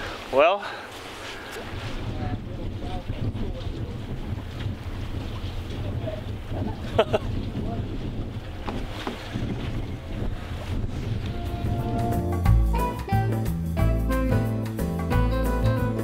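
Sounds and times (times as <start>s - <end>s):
wind buffeting microphone: 0.0s - 12.7s
person laughing: 6.7s - 7.3s.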